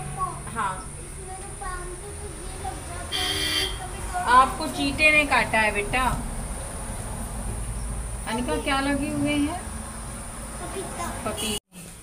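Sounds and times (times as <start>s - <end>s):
woman speaking: 4.2s - 6.3s, 8.3s - 9.7s, 11.2s - 11.6s.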